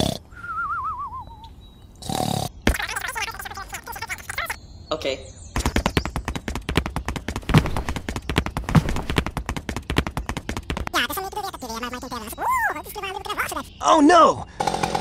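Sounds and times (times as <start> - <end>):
squeaky cartoon character chatter: 2.6 - 4.6, 10.8 - 13.8
fast sharp clicks: 5.6 - 12.4.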